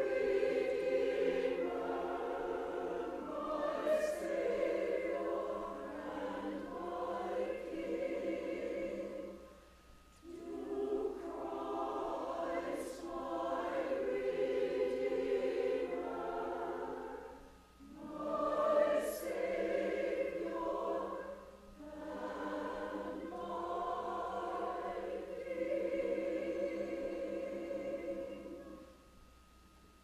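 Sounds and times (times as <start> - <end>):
mixed choir singing: 0.0 - 29.0.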